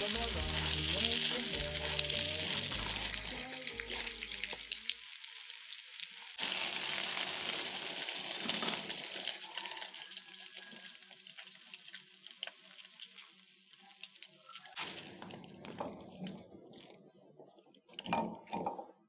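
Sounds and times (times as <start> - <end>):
food sizzling in a skillet: 0.0 - 15.2.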